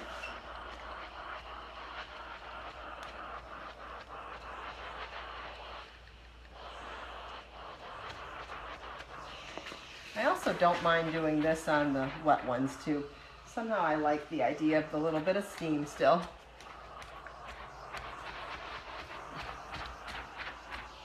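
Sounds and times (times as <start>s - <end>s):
iron rustling on fabric: 0.0s - 21.0s
steam iron hissing: 0.0s - 21.0s.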